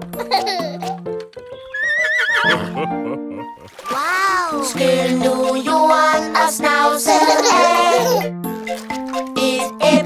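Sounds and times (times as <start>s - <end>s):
horse whinny: 1.7s - 2.8s
bouncy children's song: 3.9s - 8.3s, 9.0s - 10.0s.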